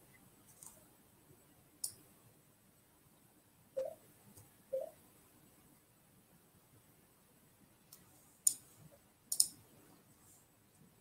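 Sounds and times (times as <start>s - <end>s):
sharp short clicks: 9.3s - 9.6s.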